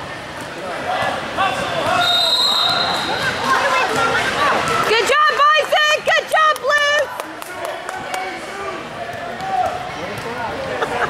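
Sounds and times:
people shouting in a gym: 0.7 - 7.2, 8.2 - 10.8.

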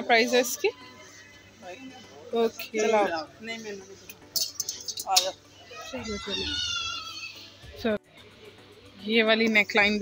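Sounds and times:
faint music: 0.0 - 10.0
shop background noise: 0.0 - 10.0.

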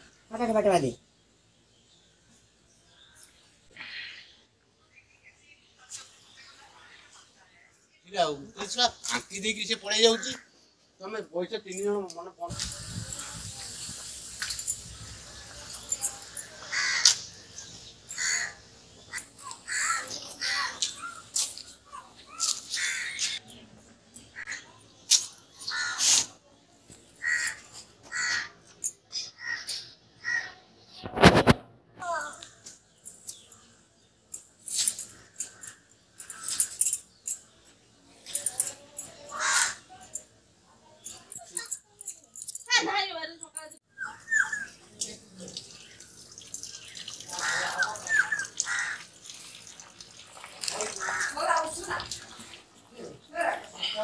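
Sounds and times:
crows cawing: 10.0 - 10.5, 16.6 - 17.3, 18.1 - 20.9, 22.4 - 23.4, 25.6 - 26.1, 27.2 - 28.6, 29.4 - 30.6, 39.3 - 39.9, 47.3 - 49.1, 50.7 - 51.7.

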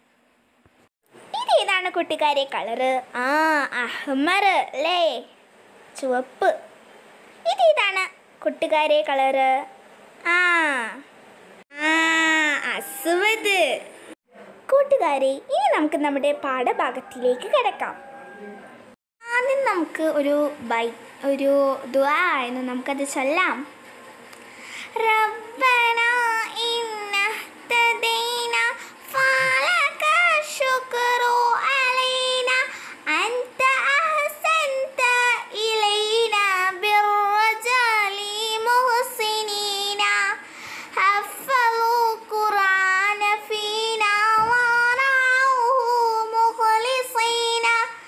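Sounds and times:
child chanting in long held notes: 11.8 - 13.4, 25.0 - 40.4.

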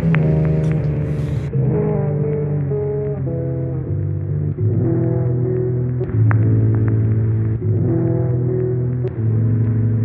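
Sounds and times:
instrumental hip-hop beat: 0.0 - 10.0.

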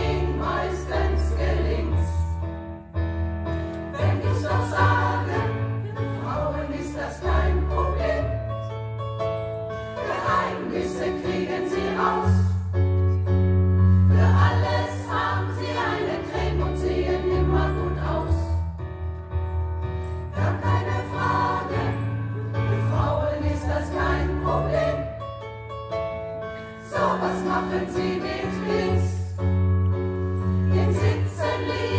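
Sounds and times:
women's choir singing: 0.0 - 2.4, 3.8 - 8.6, 9.9 - 12.6, 14.1 - 18.6, 20.3 - 25.2, 26.8 - 29.4, 30.7 - 31.9
electric keyboard accompaniment: 0.0 - 31.9.

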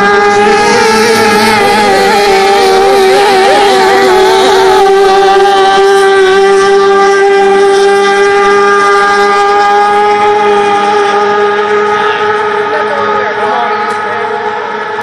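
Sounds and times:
boat engine high-pitched drone: 0.0 - 15.0.

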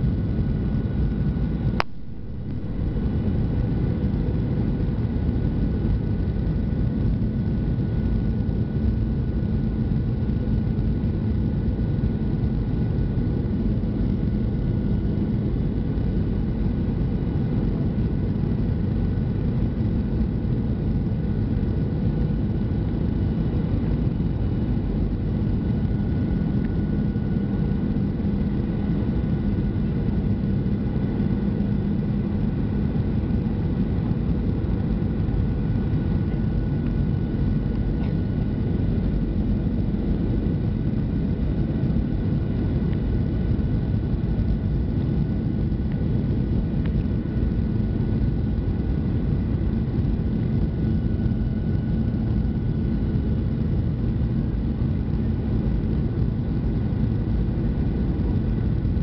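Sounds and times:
rushing airflow: 0.0 - 6.8
airplane cabin engine noise: 0.0 - 59.0
low hum: 0.0 - 59.0.

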